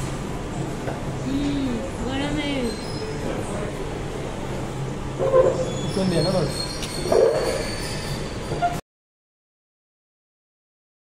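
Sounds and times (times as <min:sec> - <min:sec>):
low machine hum: 0:00.0 - 0:08.8.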